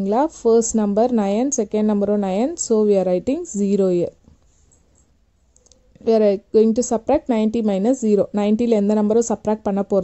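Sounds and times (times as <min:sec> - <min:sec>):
person speaking: 0:04.8 - 0:10.0.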